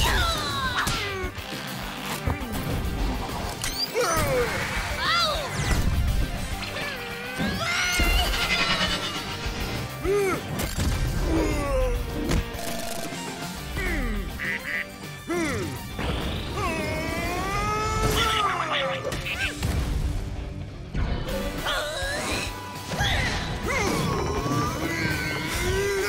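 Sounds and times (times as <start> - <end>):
background music: 0.0 - 26.0
cartoon character cries and squawks: 6.6 - 9.4.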